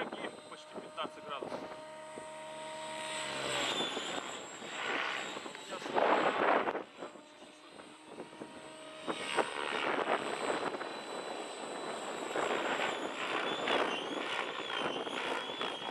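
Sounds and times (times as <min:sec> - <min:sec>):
model helicopter rotor and motor: 0:00.0 - 0:15.9.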